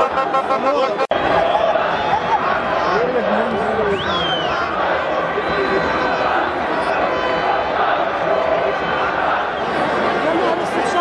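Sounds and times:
stadium crowd shouting: 0:00.0 - 0:11.0.

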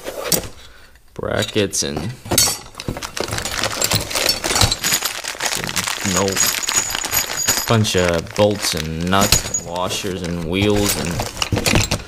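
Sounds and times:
metal parts clinking in box: 0:02.4 - 0:12.0.

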